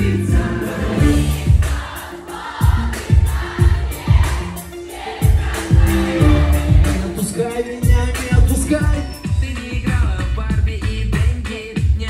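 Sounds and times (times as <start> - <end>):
heavy bass drum beat: 0.0 - 2.0, 2.6 - 12.0.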